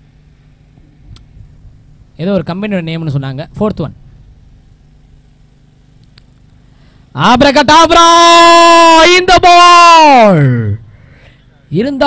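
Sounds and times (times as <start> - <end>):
faint low outdoor rumble: 0.0 - 8.0.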